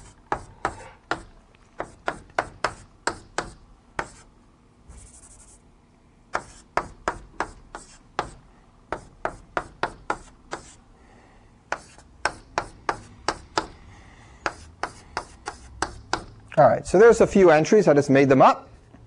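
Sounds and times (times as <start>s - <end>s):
chalk tapping on a blackboard: 0.0s - 4.3s, 6.3s - 10.8s, 11.7s - 13.8s, 14.4s - 16.4s.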